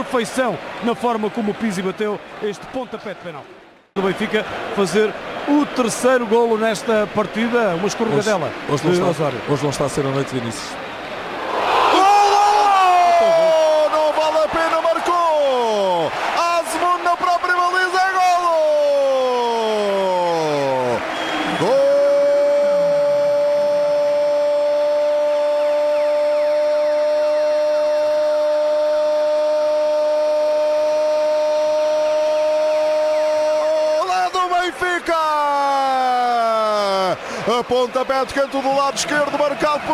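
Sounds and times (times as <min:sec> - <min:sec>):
long held goal cry: 0:11.6 - 0:37.4.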